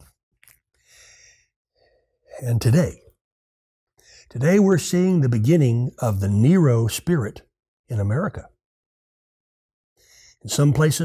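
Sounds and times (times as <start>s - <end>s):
man's faint in-breath: 0.8s - 2.2s.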